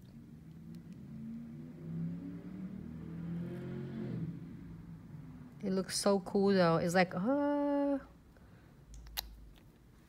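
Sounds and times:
vehicle engine accelerating: 0.3 - 5.6.

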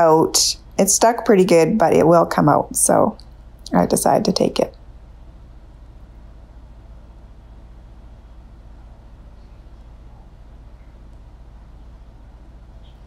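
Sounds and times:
indoor store hum: 0.0 - 13.0.

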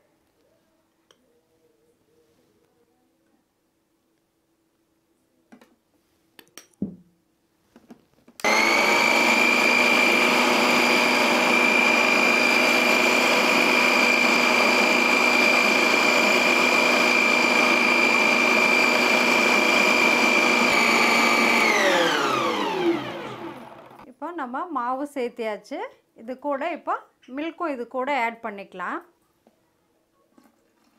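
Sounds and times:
mixer grinder motor whining: 8.4 - 24.1.

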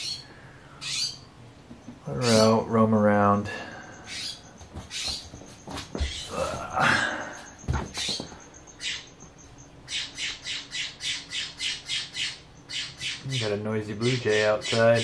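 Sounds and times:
blue jay squawking: 0.0 - 1.3, 2.1 - 2.6, 3.9 - 5.2, 7.9 - 9.2, 9.8 - 15.0.

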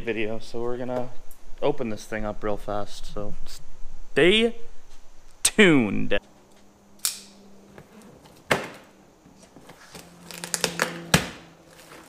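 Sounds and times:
faint steady hum: 0.0 - 12.0
utility knife cutting tape: 9.9 - 12.0
cardboard box being handled: 11.7 - 12.0.

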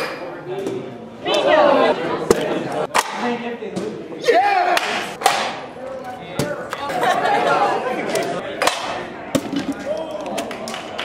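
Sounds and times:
teenagers talking and calling out: 0.2 - 10.4.

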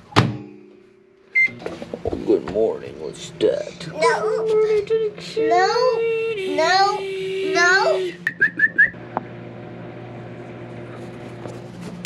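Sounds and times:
high whistle-like chirps: 8.2 - 9.0.

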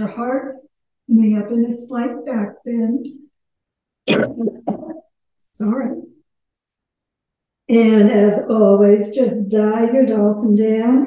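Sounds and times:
woman coughing: 4.1 - 5.0.

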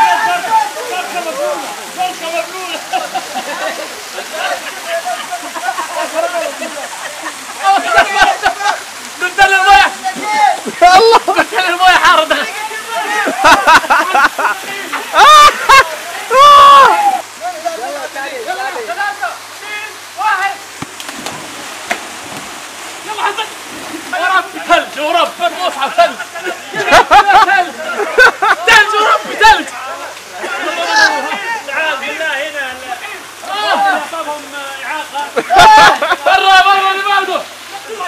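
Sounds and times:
men shouting: 0.0 - 2.9, 7.6 - 20.7, 23.0 - 29.7, 30.4 - 32.2, 33.0 - 34.2, 35.4 - 38.0
water splashing in pool: 0.0 - 38.0.

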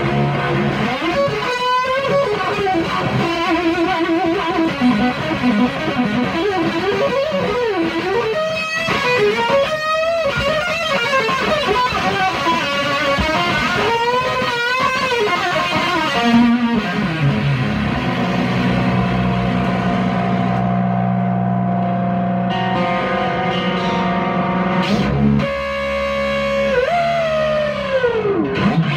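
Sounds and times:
distorted electric guitar lead: 0.0 - 28.9.

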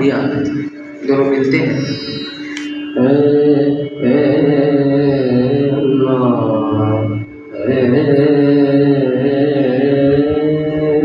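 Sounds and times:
faint steady drone: 0.0 - 11.0
man singing into a microphone: 2.9 - 11.0.

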